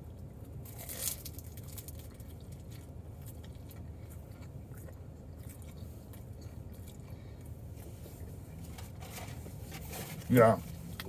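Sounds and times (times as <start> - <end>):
chewing pastry: 0.0 - 9.4
low steady hum: 0.0 - 11.0
pastry crackles: 0.6 - 3.9.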